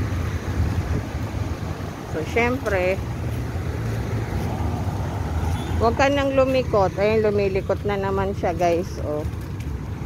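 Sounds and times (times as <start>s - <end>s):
city traffic rumble: 0.0s - 10.0s.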